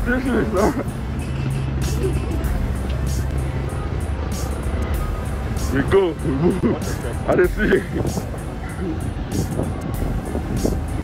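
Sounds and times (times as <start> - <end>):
music with low bass line: 0.0 - 11.0
street noise: 0.0 - 11.0.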